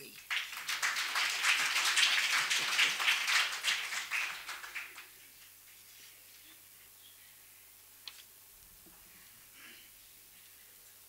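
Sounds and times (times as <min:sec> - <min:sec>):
audience applauding: 0:00.0 - 0:05.2.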